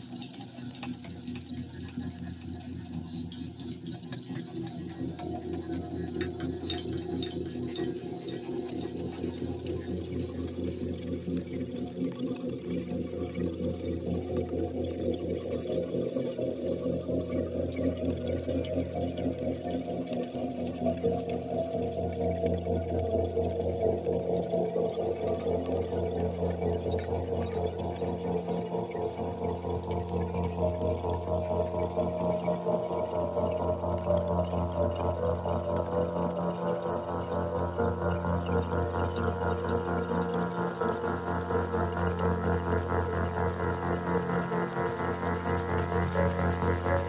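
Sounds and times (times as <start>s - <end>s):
low electronic drone: 0.1s - 47.0s.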